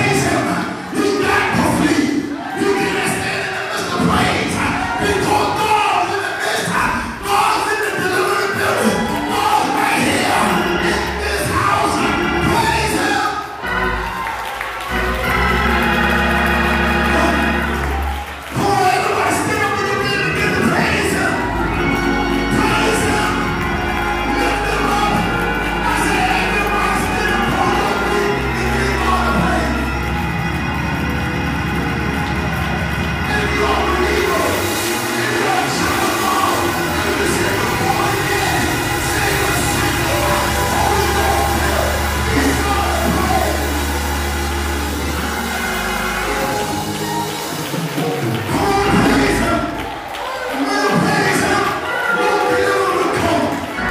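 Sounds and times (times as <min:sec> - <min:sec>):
sustained bass notes: 0:10.0 - 0:18.7, 0:19.8 - 0:49.8.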